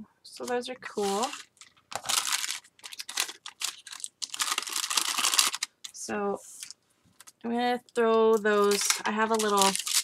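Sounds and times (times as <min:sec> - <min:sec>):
plastic bag crinkling: 0:00.8 - 0:06.0, 0:08.4 - 0:10.0.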